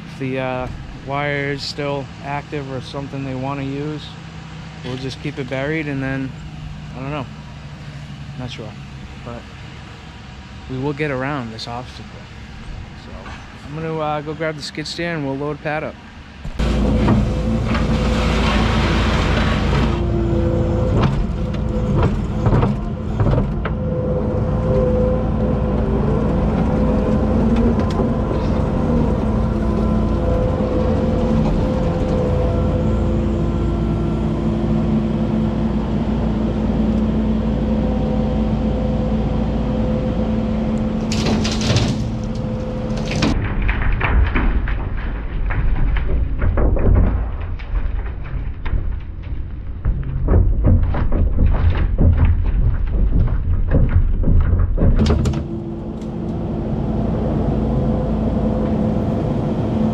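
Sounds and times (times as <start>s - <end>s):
diesel engine running under load: 0.0s - 43.6s, 54.7s - 59.9s
hydraulic whine: 0.0s - 44.8s, 54.6s - 59.9s
dirt pouring into truck bed: 16.6s - 20.0s.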